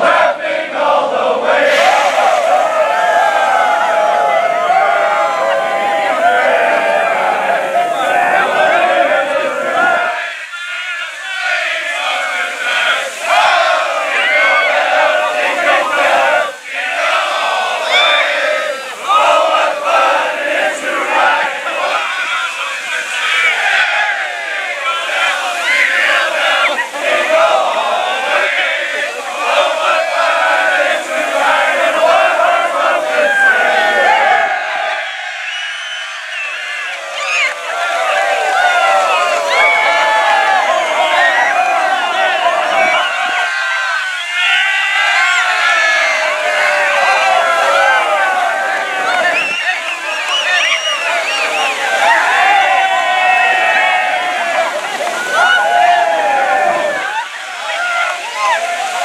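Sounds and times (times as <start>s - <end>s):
crowd of men cheering: 0.0s - 59.0s
water spray: 1.6s - 10.5s, 11.2s - 24.0s, 24.6s - 35.4s.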